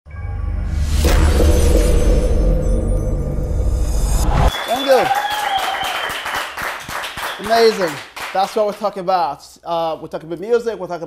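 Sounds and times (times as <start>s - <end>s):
loud crashing hit: 0.7s - 4.5s.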